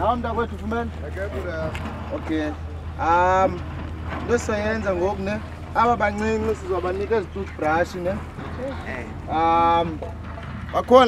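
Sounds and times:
people talking: 0:00.0 - 0:03.6, 0:04.2 - 0:10.0, 0:10.7 - 0:11.0
steady low hum: 0:00.0 - 0:11.0.

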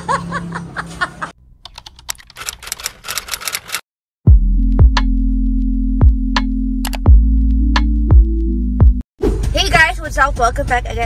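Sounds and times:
woman laughing: 0:00.0 - 0:01.3
keyboard typing clicks: 0:01.6 - 0:03.8, 0:06.8 - 0:07.1.

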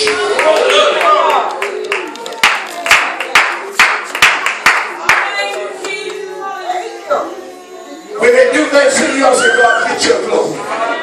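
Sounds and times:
congregation clapping in time: 0:00.0 - 0:06.2.

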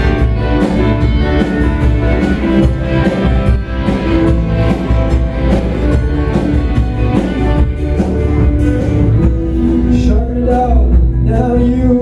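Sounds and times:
drums keeping steady beat: 0:00.0 - 0:12.0
strummed guitar: 0:00.0 - 0:12.0.

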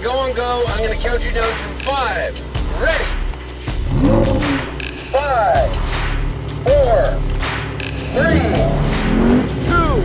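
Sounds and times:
sports car engine idling and revving: 0:00.0 - 0:10.0.

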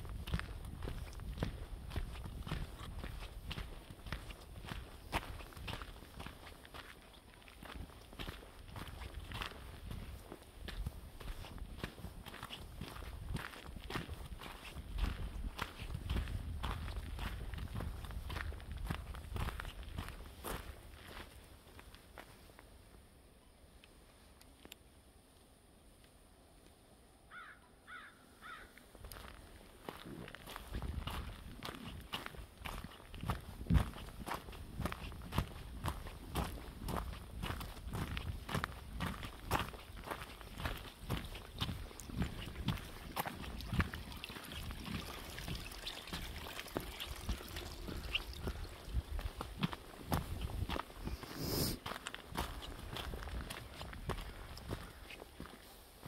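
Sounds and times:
footsteps on frosty dirt trail: 0:00.0 - 0:23.0, 0:27.3 - 0:56.0.

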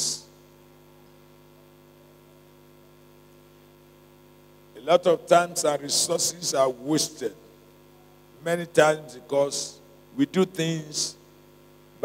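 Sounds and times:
man talking: 0:00.0 - 0:00.2, 0:04.8 - 0:07.4, 0:08.4 - 0:11.2
electrical hum: 0:00.0 - 0:12.0.

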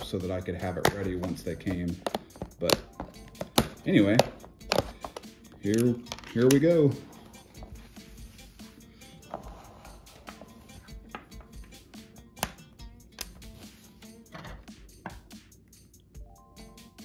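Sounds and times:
quiet background music: 0:00.0 - 0:17.0
plastic containers clicking: 0:00.7 - 0:06.7.

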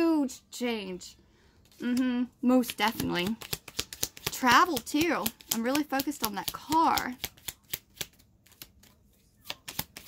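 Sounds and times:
cards being shuffled: 0:01.6 - 0:10.0.

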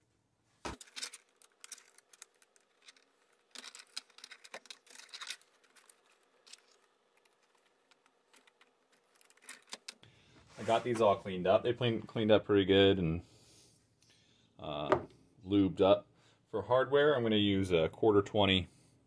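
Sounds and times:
metal and plastic clicks and scrapes: 0:00.7 - 0:10.0.

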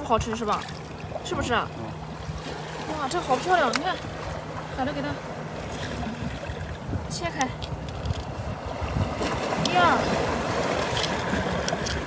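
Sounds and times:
surf washing around rocks: 0:00.0 - 0:12.0.

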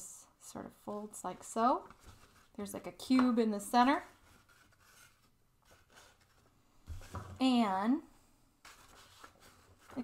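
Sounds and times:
paper rustling: 0:08.6 - 0:10.0.

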